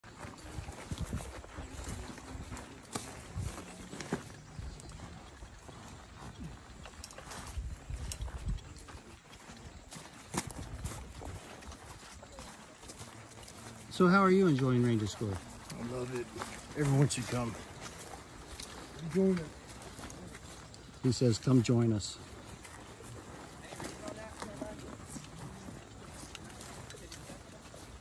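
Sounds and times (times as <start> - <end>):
boots crunching on sandy trail: 0.0 - 28.0.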